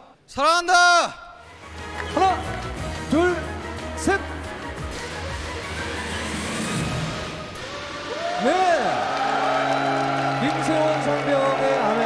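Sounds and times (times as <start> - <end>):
background music: 0.9 - 12.0.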